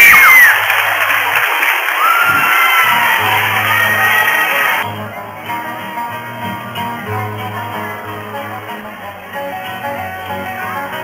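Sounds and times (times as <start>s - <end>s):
shrill cry: 0.0s - 0.7s, 2.0s - 4.8s
children clapping and cheering: 0.0s - 4.8s
acoustic guitars playing softly: 2.9s - 11.0s.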